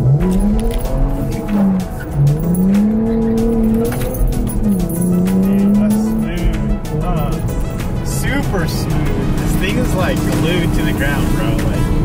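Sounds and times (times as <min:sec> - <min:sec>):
car engine revving uphill: 0:00.0 - 0:12.0.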